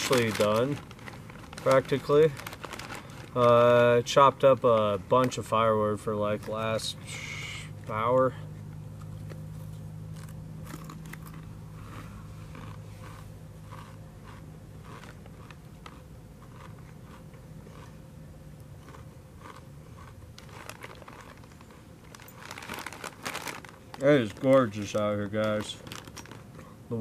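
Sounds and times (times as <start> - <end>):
chips being crunched: 0.0 - 3.9, 18.8 - 26.5
foil bag crinkling: 0.0 - 8.1, 19.4 - 27.0
low steady hum: 0.0 - 27.0.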